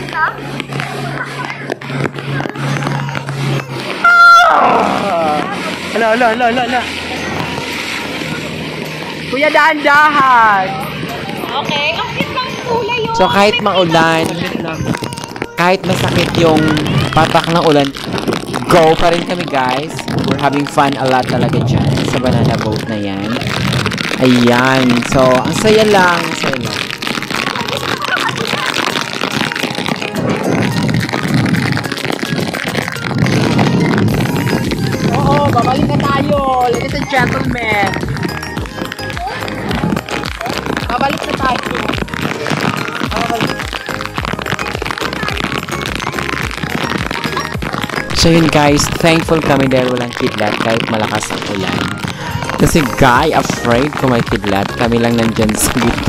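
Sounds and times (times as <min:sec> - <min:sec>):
outboard engine: 0:00.0 - 0:13.1
churning water: 0:00.0 - 0:56.0
spray and rain: 0:00.0 - 0:56.0
wind rushing on microphone: 0:00.0 - 0:56.0.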